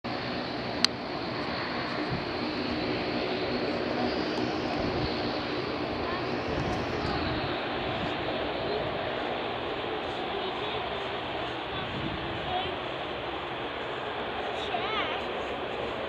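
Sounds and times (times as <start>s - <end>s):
distant jet engine rumble: 0.0s - 16.0s
outdoor noise: 0.0s - 16.0s.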